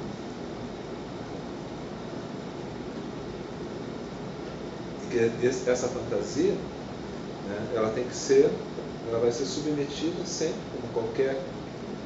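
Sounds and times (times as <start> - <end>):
room hiss and hum: 0.0 - 12.0.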